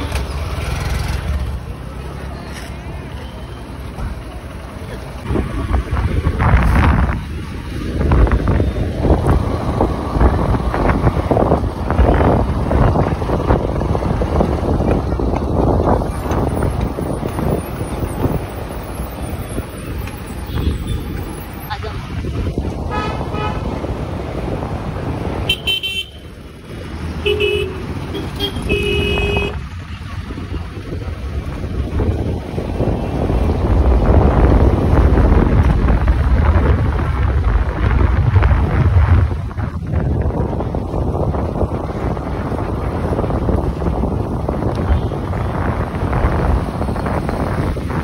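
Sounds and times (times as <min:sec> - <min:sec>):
motorcycle running on road: 0:00.0 - 0:48.0
traffic rumble: 0:00.0 - 0:48.0
wind buffeting microphone: 0:05.2 - 0:25.4, 0:27.8 - 0:48.0
vehicle horn honking: 0:22.9 - 0:23.6, 0:25.5 - 0:26.2, 0:27.2 - 0:29.6.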